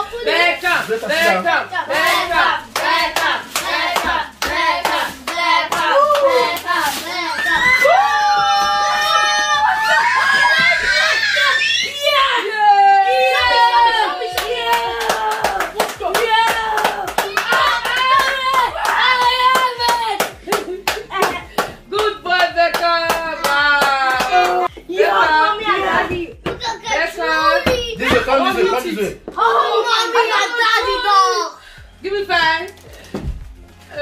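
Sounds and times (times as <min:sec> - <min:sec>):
hand claps: 0:14.4 - 0:24.7.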